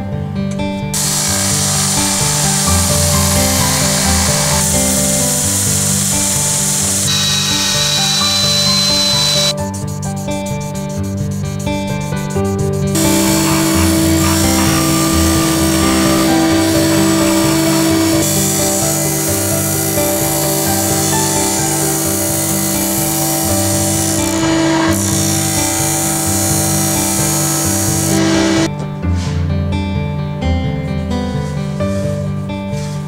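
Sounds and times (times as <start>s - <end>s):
disc sander grinding: 1.0s - 9.6s, 12.9s - 28.7s.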